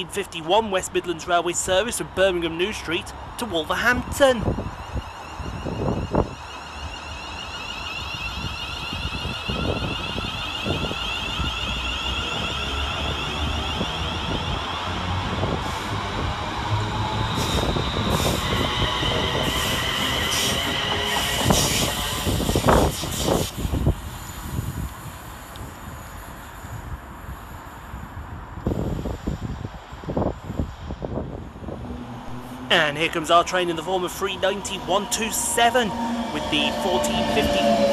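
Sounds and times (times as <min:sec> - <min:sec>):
electric train motor whine: 0:04.5 - 0:26.1, 0:31.5 - 0:37.9.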